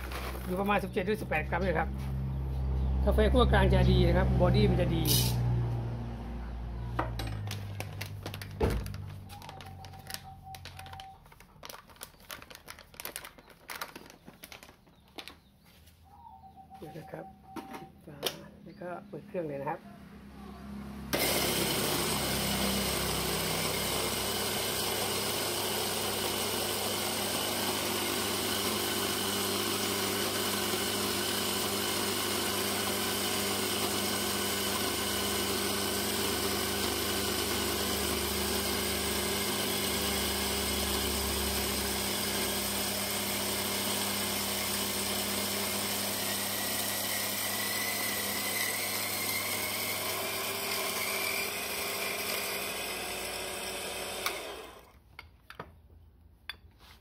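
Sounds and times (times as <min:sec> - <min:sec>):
espresso machine pump buzzing: 0:21.1 - 0:54.9.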